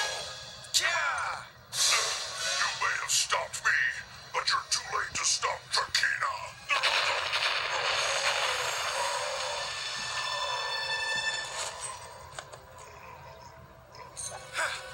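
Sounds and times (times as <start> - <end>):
music: 0.0 - 3.2, 9.0 - 14.9.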